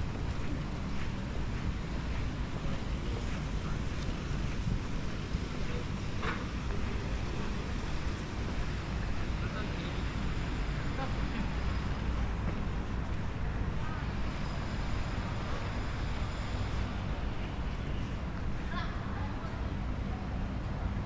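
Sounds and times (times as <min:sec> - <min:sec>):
distant traffic rumble: 0:00.0 - 0:21.0.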